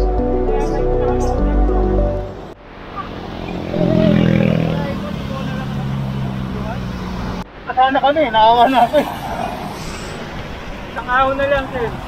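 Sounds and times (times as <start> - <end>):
motor scooter passing: 2.8 - 7.4, 8.6 - 12.0.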